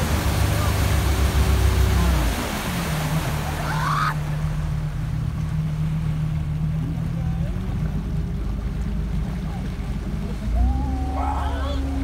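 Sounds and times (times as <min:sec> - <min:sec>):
motorboat engine running: 0:00.0 - 0:12.0
water rushing past hull: 0:00.0 - 0:12.0.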